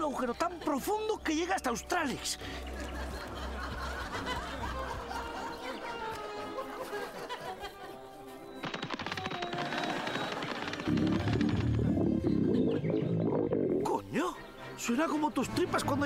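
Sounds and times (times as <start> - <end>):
background music: 0.0 - 16.0
rapid clatter: 8.6 - 12.1
ground rumbling: 8.8 - 13.9.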